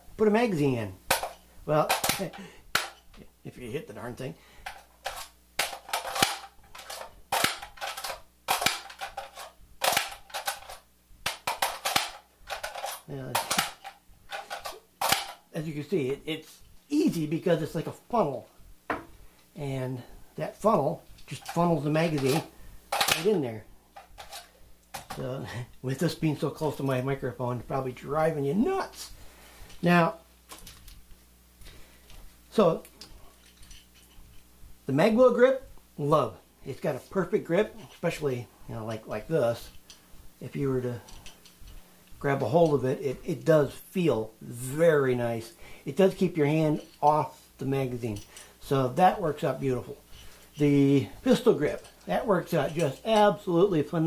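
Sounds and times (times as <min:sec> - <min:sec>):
man talking: 0:00.0 - 0:04.5, 0:13.0 - 0:13.8, 0:15.5 - 0:18.6, 0:19.5 - 0:23.8, 0:25.0 - 0:29.2, 0:29.8 - 0:30.2, 0:32.5 - 0:33.0, 0:34.8 - 0:39.8, 0:40.4 - 0:41.3, 0:42.1 - 0:54.0
rifle handling clicks and knocks: 0:01.1 - 0:03.2, 0:04.6 - 0:15.5, 0:20.6 - 0:23.4, 0:24.0 - 0:25.2, 0:30.5 - 0:31.1, 0:32.1 - 0:34.5, 0:40.9 - 0:41.8, 0:50.1 - 0:53.3
magazine clacking into rifle: 0:05.1 - 0:15.4, 0:23.0 - 0:23.3.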